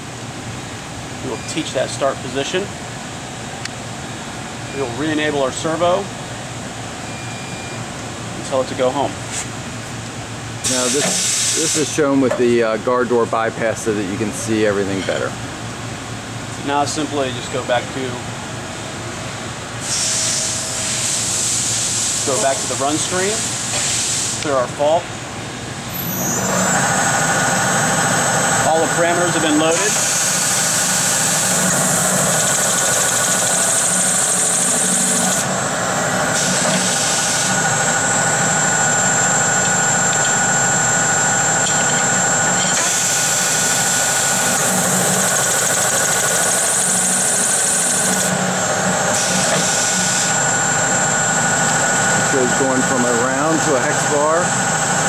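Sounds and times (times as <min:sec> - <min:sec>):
high hiss of metal cutting: 0:19.8 - 0:22.7
chamfering machine motor whine: 0:25.9 - 0:55.0.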